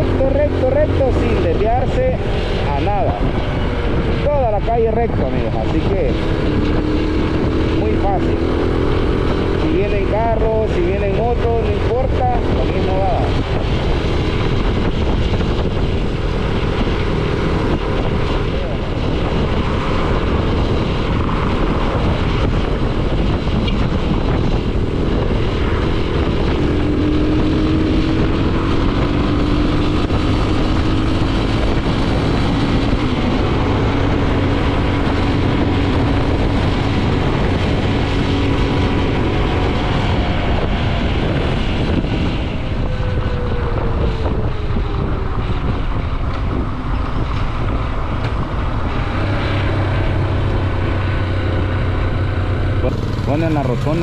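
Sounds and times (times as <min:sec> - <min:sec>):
motorcycle engine running: 0:00.0 - 0:54.0
wind rushing over microphone: 0:00.0 - 0:54.0.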